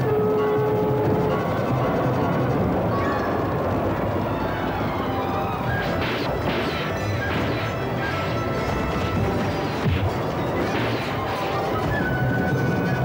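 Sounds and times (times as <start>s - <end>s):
orchestral music: 4.8s - 13.0s
sharp clashing impacts: 5.9s - 11.6s.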